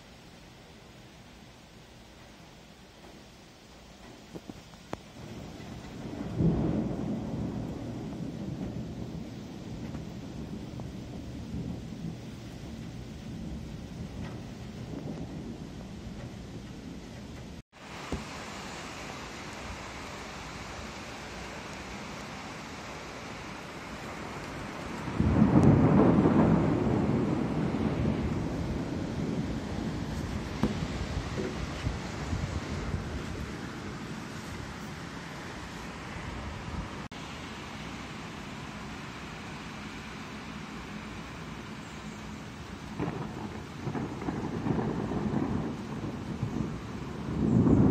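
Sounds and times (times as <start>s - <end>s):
rolling thunder: 5.1s - 18.2s, 23.9s - 37.1s, 42.8s - 47.9s.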